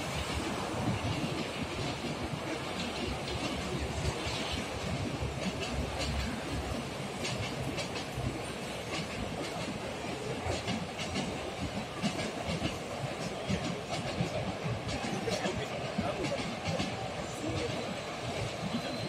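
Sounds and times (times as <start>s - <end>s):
train rumble: 0.0s - 19.0s
train wheels clicking on rails: 0.0s - 19.0s.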